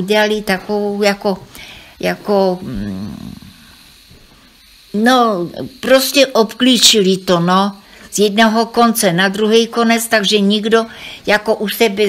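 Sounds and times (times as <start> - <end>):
elderly woman speaking: 0.0 - 3.0, 5.0 - 12.0
faint hiss: 0.0 - 12.0.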